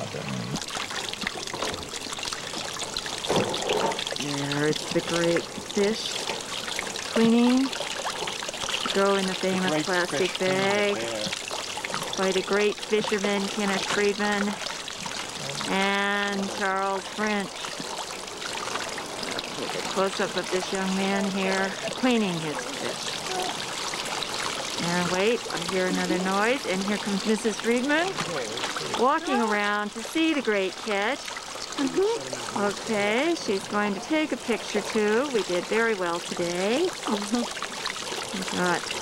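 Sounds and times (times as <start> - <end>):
water running from hose: 0.0 - 39.0
water splashing on bench: 0.0 - 39.0.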